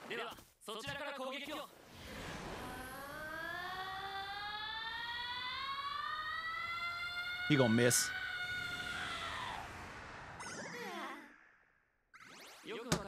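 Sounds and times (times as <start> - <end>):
steady rising tone: 1.9 - 12.5.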